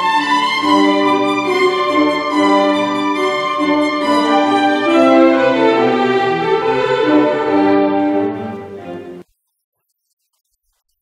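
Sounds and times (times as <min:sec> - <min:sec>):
cello and string orchestra playing: 0:00.0 - 0:09.2.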